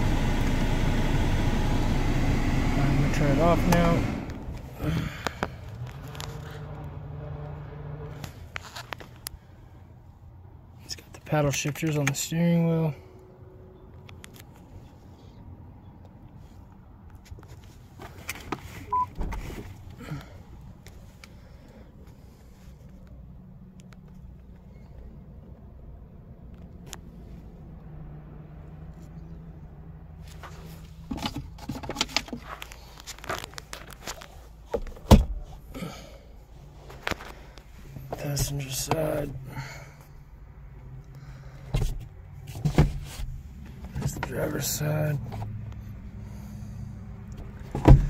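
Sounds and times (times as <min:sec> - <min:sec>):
car engine idling hum: 0:00.0 - 0:12.3, 0:13.1 - 0:48.0.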